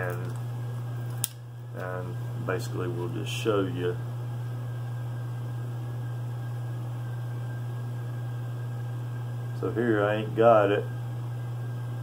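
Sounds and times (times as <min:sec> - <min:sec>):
steady low hum with hiss: 0:00.0 - 0:12.0.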